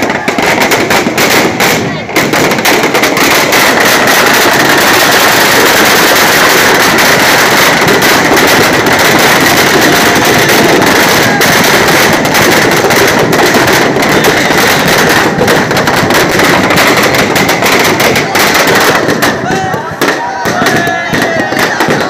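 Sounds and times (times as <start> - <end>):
firecrackers crackling rapidly: 0.0 - 22.0.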